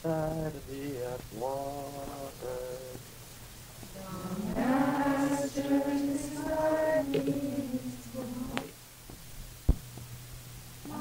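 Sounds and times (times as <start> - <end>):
steady low hum: 0.0 - 11.0
group chanting: 3.9 - 8.8
faint tap: 8.6 - 10.1.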